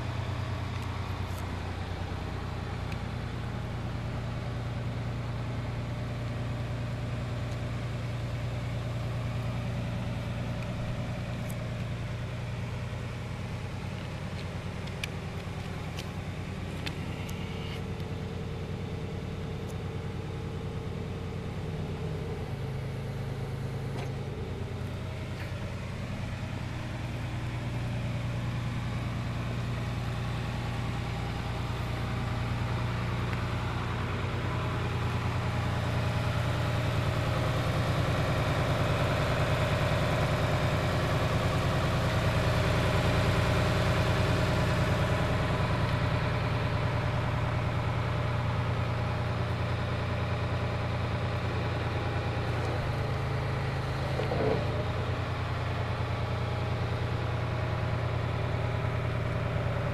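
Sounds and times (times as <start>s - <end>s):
tractor engine idling: 0.0s - 59.9s.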